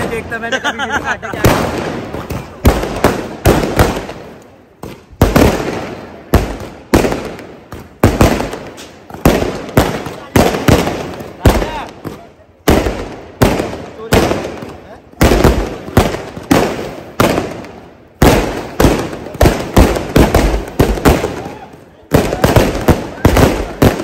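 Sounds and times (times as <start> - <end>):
fireworks bursting: 0.0 - 24.0.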